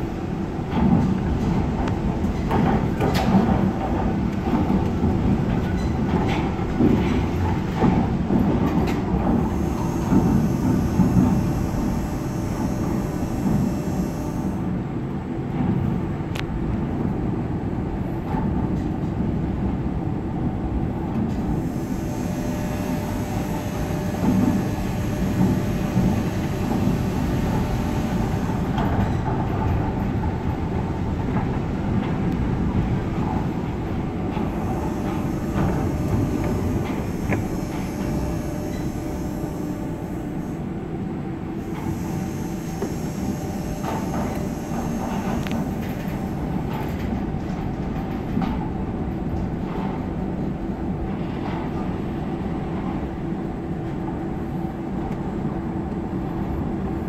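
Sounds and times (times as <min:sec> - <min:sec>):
monorail car rumbling: 0:00.0 - 0:57.0.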